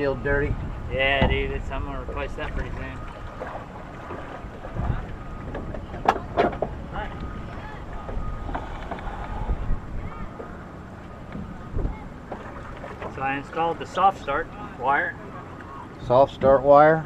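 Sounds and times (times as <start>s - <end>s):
wind rumbling on microphone: 0.0s - 16.6s.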